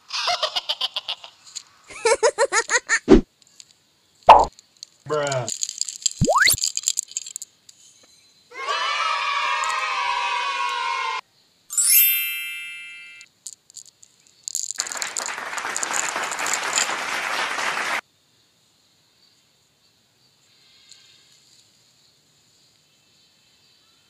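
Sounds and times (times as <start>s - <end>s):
candies clicking into palm: 4.3s - 7.4s, 13.5s - 16.9s
bright ding: 11.7s - 13.2s.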